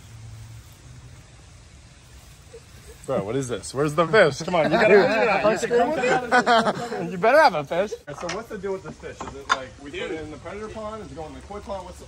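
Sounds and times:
faint hiss: 0:00.0 - 0:12.0
low outdoor background hum: 0:00.0 - 0:12.0.

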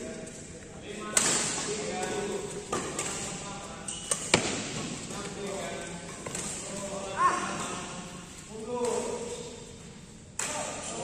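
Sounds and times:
rackets hitting shuttlecock: 0:01.1 - 0:08.0, 0:10.4 - 0:11.0.

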